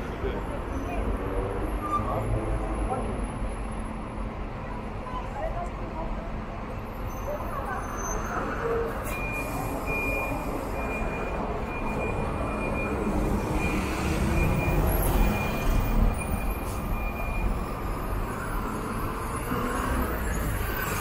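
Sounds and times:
diesel bus engines rumbling: 0.0s - 21.0s.

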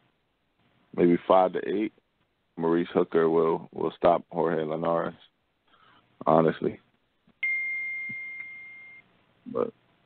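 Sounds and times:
high ding: 7.4s - 9.0s.

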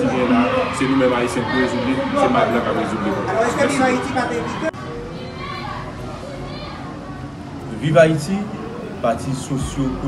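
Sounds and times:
faint high-pitched voices: 0.0s - 7.8s.

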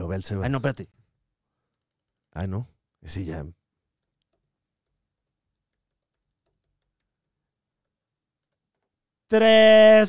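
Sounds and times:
faint clicks: 1.6s - 2.4s, 3.9s - 9.0s.

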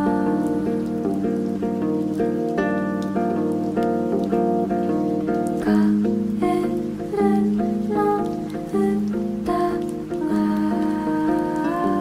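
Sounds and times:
fingerpicked acoustic guitar: 0.0s - 12.0s.

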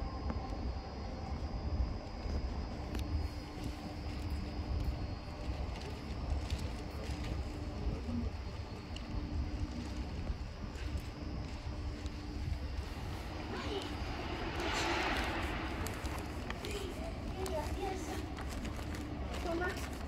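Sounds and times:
steady low rumble: 0.0s - 20.0s
rushing swell: 12.0s - 18.4s.

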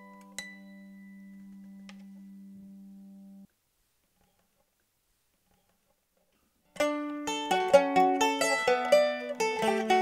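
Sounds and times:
mandolin note: 6.8s - 10.0s
plucked mandolin note: 6.8s - 10.0s.

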